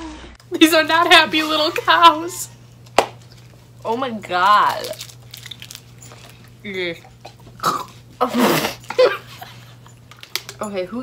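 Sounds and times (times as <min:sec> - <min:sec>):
woman laughing: 0:08.2 - 0:09.8.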